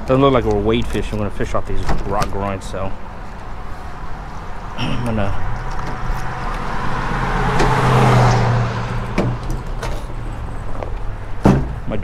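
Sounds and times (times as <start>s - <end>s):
car passing on road: 2.9s - 11.9s
light knocks of tailgate and gear: 11.4s - 11.9s.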